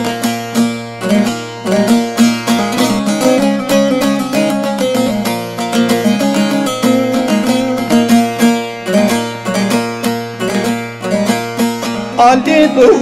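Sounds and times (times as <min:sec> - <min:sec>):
plucked lute notes: 0:00.0 - 0:13.0.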